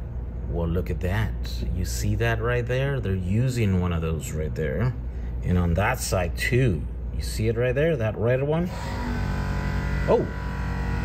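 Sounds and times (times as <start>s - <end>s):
steady tonal hum: 0.0s - 11.0s.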